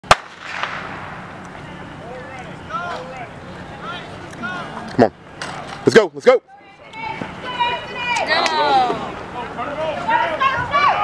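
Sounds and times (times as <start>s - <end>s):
starter's pistol shot: 0.1s - 1.2s.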